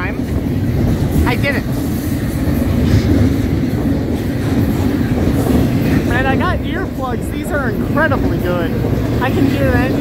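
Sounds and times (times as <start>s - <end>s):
freight train rumbling on rails: 0.0s - 10.0s.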